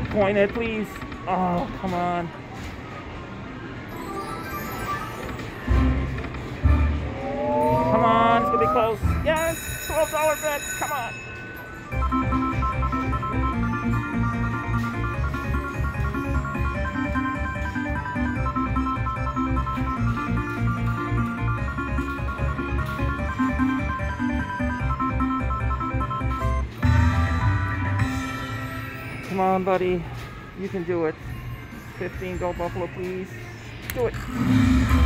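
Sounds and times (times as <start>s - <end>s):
slot machine electronic win tune: 3.9s - 10.7s, 11.7s - 29.5s.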